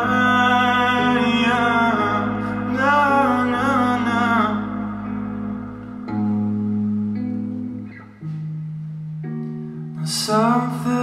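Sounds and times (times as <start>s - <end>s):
man singing a long note: 0.0s - 5.0s
low bass note: 0.0s - 7.6s
electric guitar: 0.0s - 11.0s.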